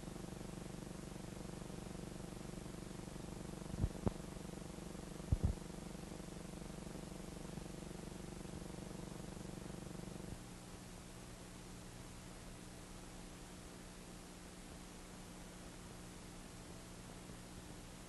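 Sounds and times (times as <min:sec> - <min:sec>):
film soundtrack hum and buzz: 0:00.0 - 0:10.7.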